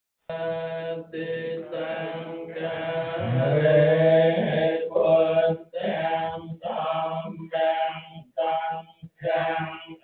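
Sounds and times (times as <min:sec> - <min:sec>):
man chanting into a microphone: 0:00.3 - 0:10.0.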